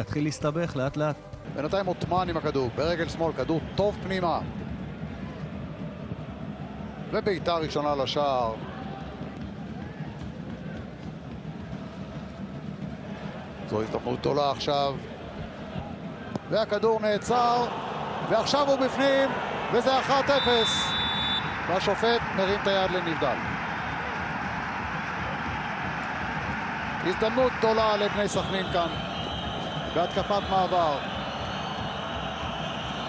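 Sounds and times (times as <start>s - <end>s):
football match ambient noise: 0.0s - 33.0s.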